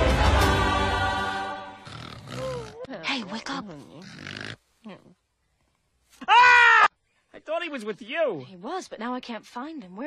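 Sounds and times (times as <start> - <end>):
cartoon voice snorting: 1.8 - 5.1
cartoon voice grunting: 2.1 - 3.4.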